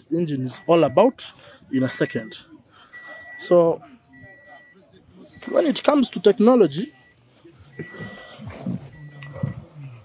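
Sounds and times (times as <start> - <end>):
car warning chime beeping: 0.0 - 10.0
indistinct low voices: 0.0 - 10.0.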